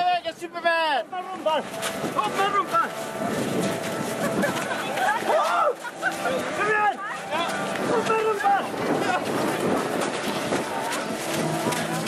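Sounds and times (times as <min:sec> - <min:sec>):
wind on microphone: 0:03.0 - 0:05.0, 0:07.7 - 0:12.0.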